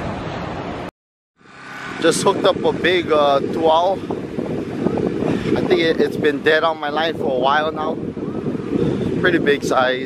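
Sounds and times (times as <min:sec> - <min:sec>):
rushing surf: 0:00.0 - 0:10.0
wind: 0:00.0 - 0:10.0.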